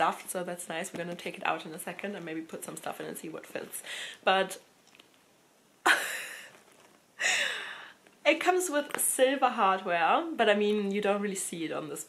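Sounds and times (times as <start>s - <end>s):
woman breathy laugh: 5.9s - 6.5s
woman sighing: 7.2s - 8.0s.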